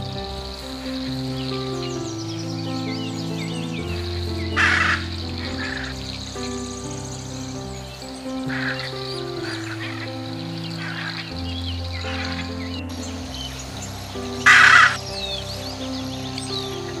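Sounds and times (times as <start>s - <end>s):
slow background music: 0.0s - 17.0s
small birds chirping: 0.0s - 17.0s
macaw squawk: 4.6s - 5.8s, 14.5s - 15.0s.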